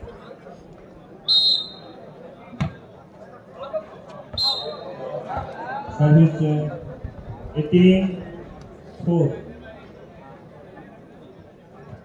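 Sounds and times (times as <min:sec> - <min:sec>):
referee's whistle blast: 0:01.3 - 0:02.0, 0:04.4 - 0:04.9.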